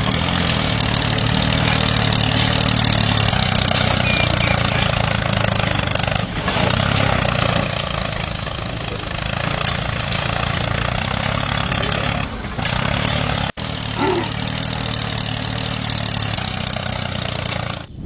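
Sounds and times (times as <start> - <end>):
tractor engine idling: 0.0 - 18.0.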